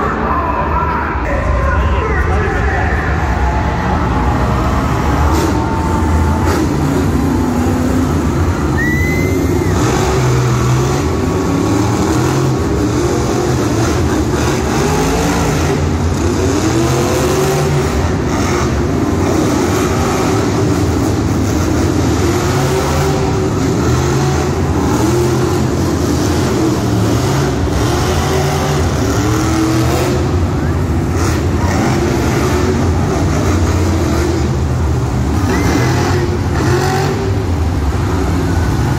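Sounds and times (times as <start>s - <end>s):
crowd noise: 0.0s - 38.9s
monster truck engines revving: 0.0s - 38.9s.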